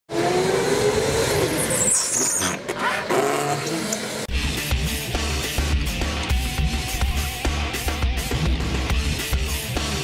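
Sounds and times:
go-kart motor rising in pitch: 0.1s - 4.3s.

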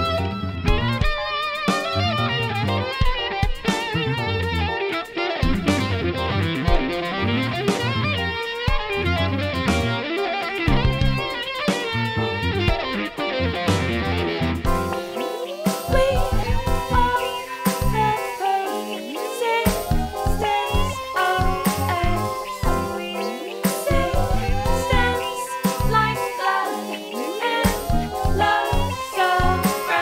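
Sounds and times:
plucked electric bass line: 0.0s - 1.1s, 1.9s - 4.8s, 5.4s - 10.0s, 10.7s - 11.3s, 11.9s - 14.9s, 15.9s - 17.2s, 17.8s - 18.2s.

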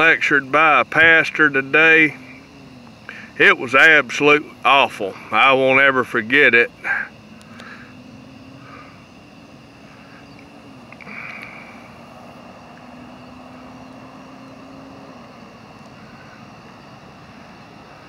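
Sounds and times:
distant engine hum: 0.0s - 18.0s.

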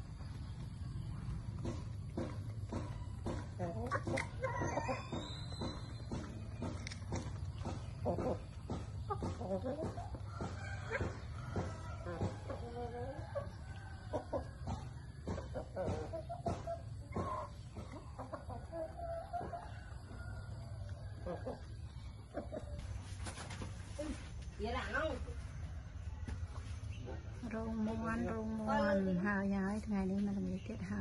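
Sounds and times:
hens clucking: 0.0s - 24.5s.

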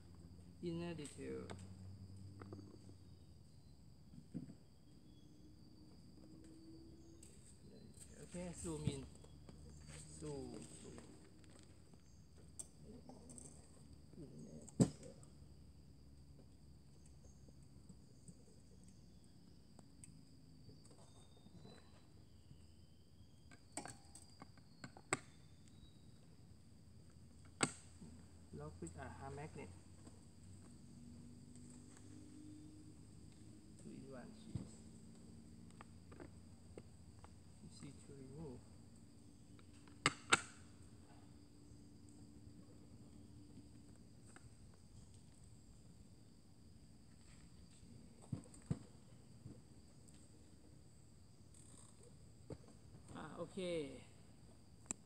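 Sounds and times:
faint high insect buzz: 0.0s - 55.0s.

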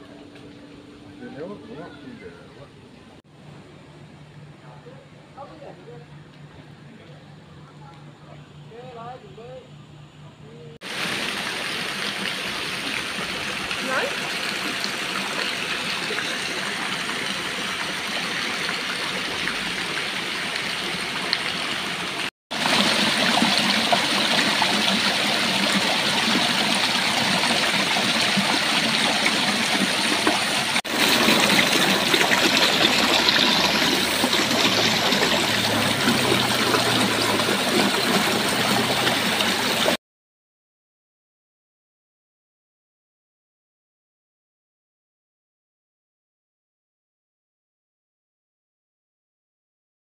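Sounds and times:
water splashing over stones: 10.8s - 40.0s.

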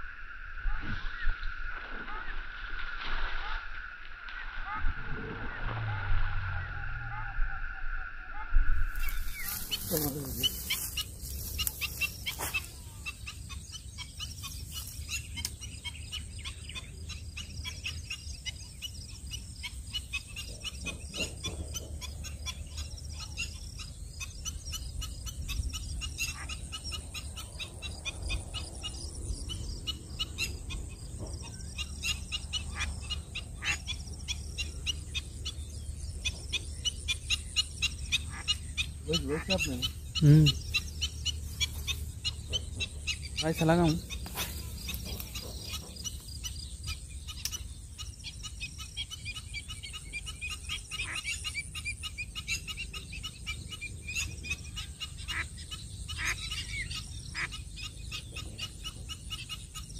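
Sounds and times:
low rumble: 0.0s - 14.4s
high insect trill: 8.8s - 49.0s
small birds chirping: 8.9s - 59.9s.

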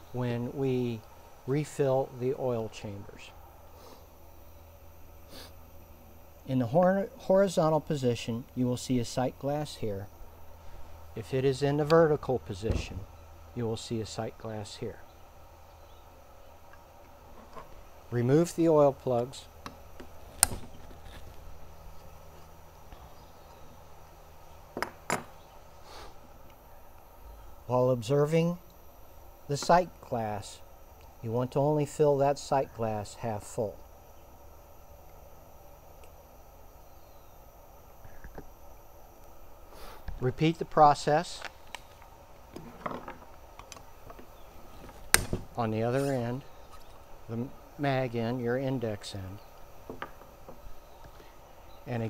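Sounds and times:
steady low hum: 0.0s - 52.0s.

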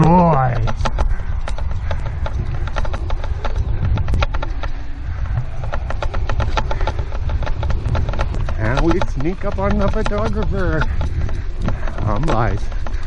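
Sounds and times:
running footsteps on dry grass: 0.0s - 13.0s
wind rumbling on microphone: 0.0s - 13.0s.

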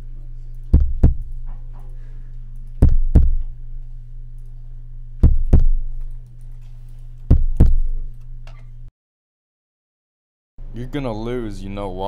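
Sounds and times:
steady low hum: 0.0s - 8.9s
heartbeat thuds: 0.7s - 1.4s, 2.8s - 3.5s, 5.2s - 6.0s, 7.3s - 8.1s.

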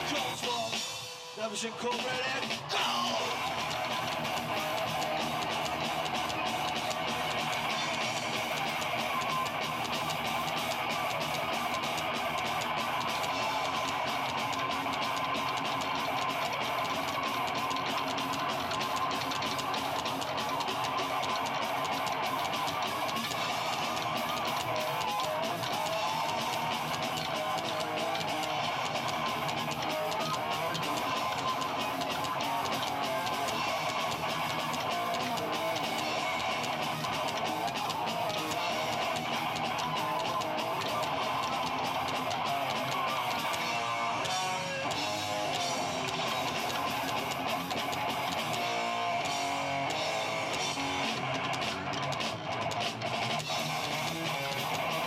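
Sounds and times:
live band playing: 0.0s - 55.0s
strummed guitar: 0.0s - 55.0s.

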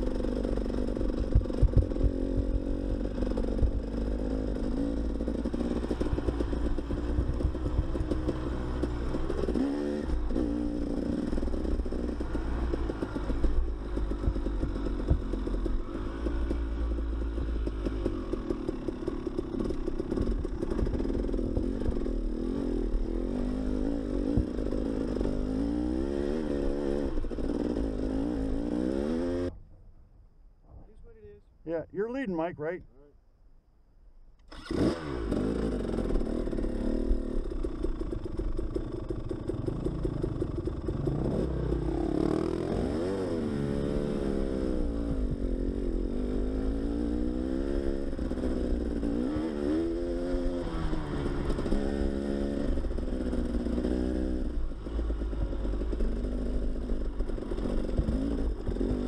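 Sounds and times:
dirt bike engine revving: 0.0s - 29.5s, 34.4s - 59.0s.

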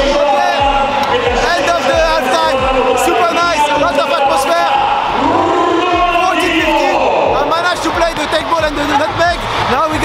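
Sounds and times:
large crowd noise: 0.0s - 10.0s
man talking: 0.0s - 10.0s.

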